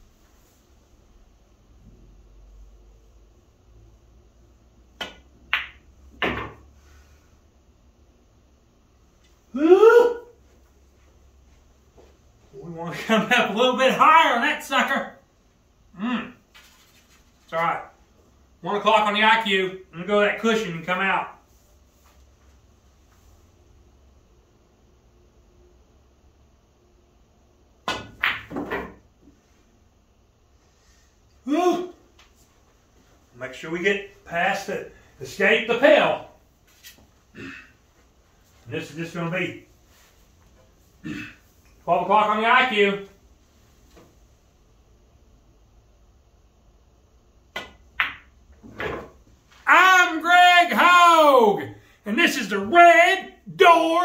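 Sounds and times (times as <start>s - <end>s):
pool cue striking ball: 5.0s - 6.6s, 27.8s - 29.0s, 47.5s - 49.2s
man exclaiming: 9.5s - 10.4s, 12.6s - 15.1s, 31.4s - 32.0s, 49.7s - 54.0s
ball dropping into pocket: 27.8s - 29.0s.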